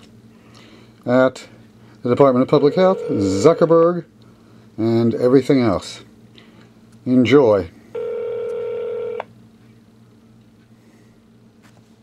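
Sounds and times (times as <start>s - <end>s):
faint low hum: 0.0s - 12.0s
phone call-progress tone: 2.5s - 3.6s, 8.0s - 9.3s.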